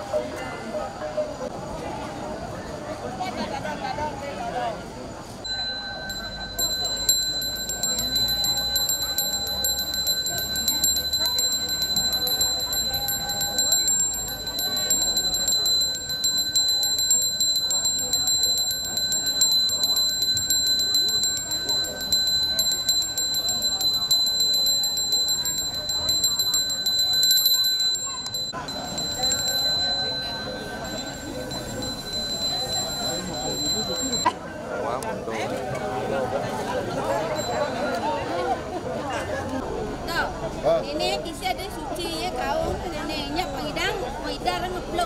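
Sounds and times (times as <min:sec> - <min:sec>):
hand bell ringing: 0:05.4 - 0:34.3, 0:37.3 - 0:38.0.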